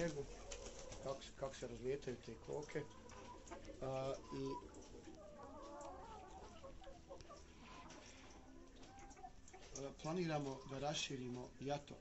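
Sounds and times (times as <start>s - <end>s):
hens clucking softly: 0.0s - 11.4s.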